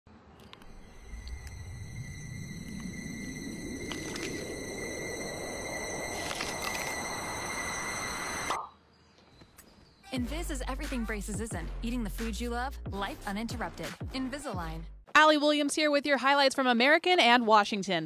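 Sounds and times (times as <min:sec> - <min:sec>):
rushing noise riser: 0:00.6 - 0:08.6
thin steady high tones: 0:00.7 - 0:08.6.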